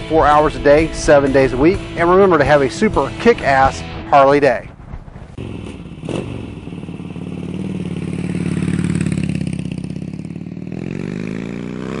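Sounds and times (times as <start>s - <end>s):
motorcycle engine revving: 5.3s - 12.0s.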